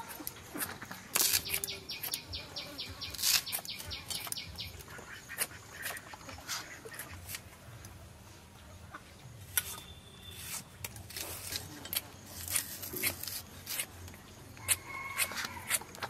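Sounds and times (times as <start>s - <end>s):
bird chirp: 1.2s - 6.0s, 9.6s - 10.6s.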